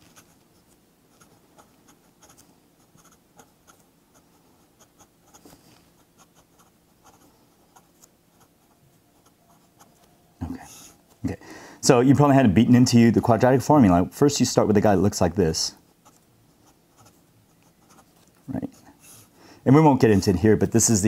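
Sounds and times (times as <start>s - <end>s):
pen scratching on paper: 0.0s - 10.1s, 15.9s - 19.2s.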